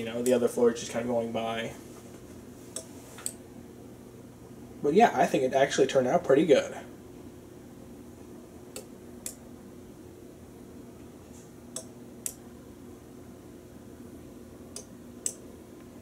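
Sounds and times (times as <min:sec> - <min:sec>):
faint steady hum: 0:00.0 - 0:16.0
sequencer switching clicks: 0:02.7 - 0:03.4, 0:08.7 - 0:09.4, 0:11.7 - 0:12.5, 0:14.7 - 0:15.9.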